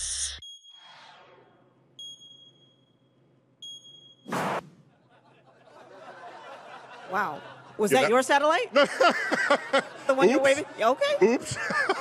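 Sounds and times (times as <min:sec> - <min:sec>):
high electronic beeps: 0:02.0 - 0:04.3.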